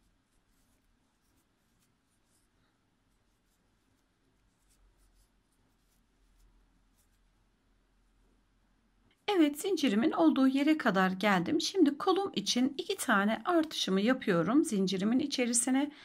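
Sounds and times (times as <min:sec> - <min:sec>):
crochet hook working yarn: 0:00.0 - 0:07.4.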